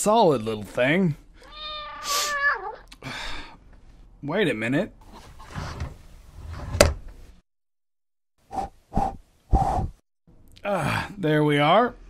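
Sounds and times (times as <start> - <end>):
cat meowing: 1.4 - 2.9.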